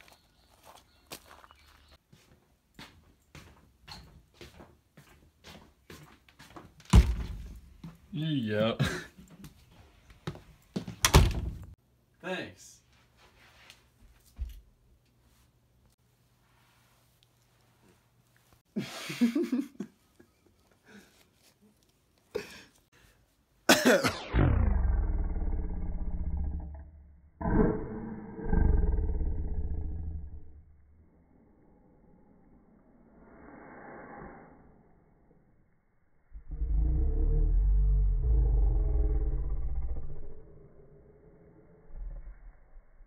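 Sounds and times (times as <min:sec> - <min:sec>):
person growling in the throat: 0:24.1 - 0:30.4, 0:36.4 - 0:40.8.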